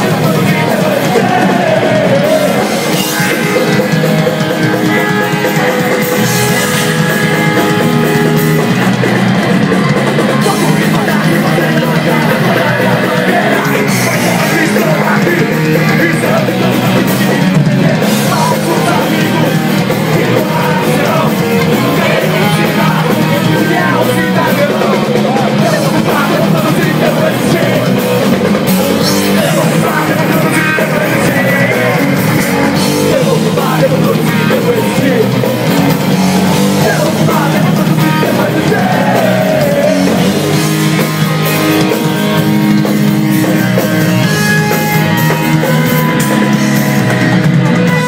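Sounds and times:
drum kit: 0:00.0 - 0:48.0
electric guitars: 0:00.0 - 0:48.0.

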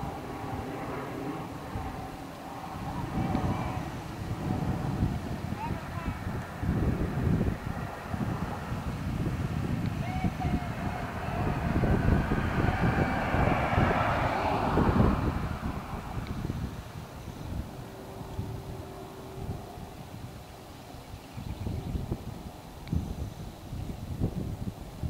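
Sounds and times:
vehicle passing on road: 0:00.0 - 0:24.7
wind buffeting microphone: 0:00.0 - 0:25.0.

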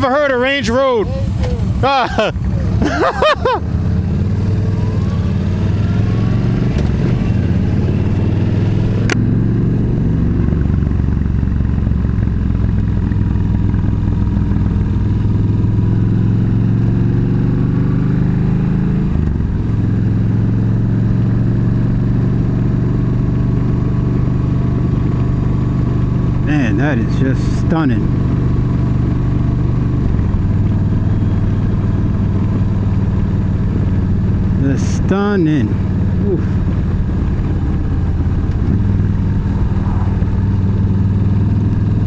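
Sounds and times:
motorcycle engine running: 0:00.0 - 0:42.0.

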